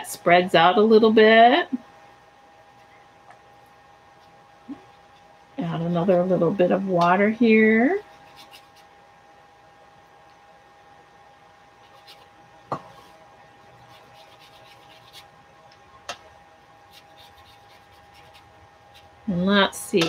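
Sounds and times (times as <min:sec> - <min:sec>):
paintbrush rubbing on paper: 0:08.0 - 0:08.9, 0:11.8 - 0:12.3, 0:13.0 - 0:15.3, 0:16.8 - 0:19.2.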